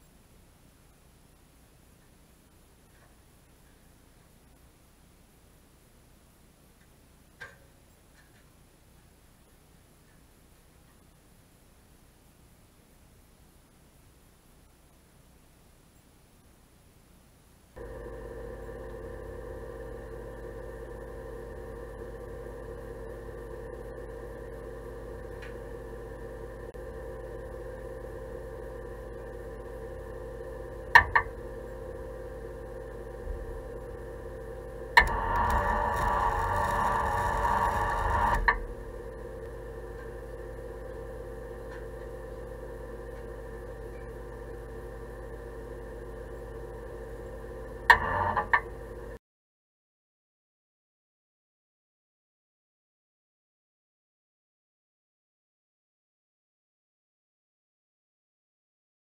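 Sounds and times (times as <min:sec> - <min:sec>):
steady electrical hum: 0:00.0 - 0:49.2
welding arc: 0:34.8 - 0:40.2.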